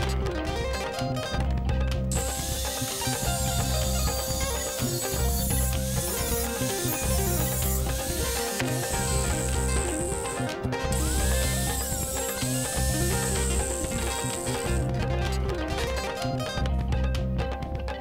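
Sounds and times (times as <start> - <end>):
background music with bass line: 0.0 - 18.0
angle grinder cutting steel: 2.1 - 14.9.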